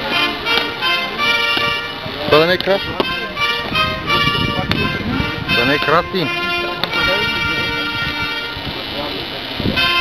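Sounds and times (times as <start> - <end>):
military band playing chords: 0.0 - 10.0.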